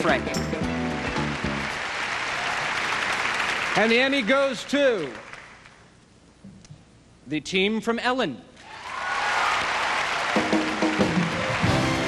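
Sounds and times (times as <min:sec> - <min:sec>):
audience applause: 0:00.8 - 0:05.8, 0:08.7 - 0:12.0.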